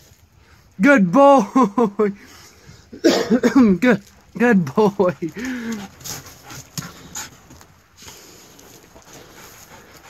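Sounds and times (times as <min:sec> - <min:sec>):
dog panting: 0:05.2 - 0:10.0.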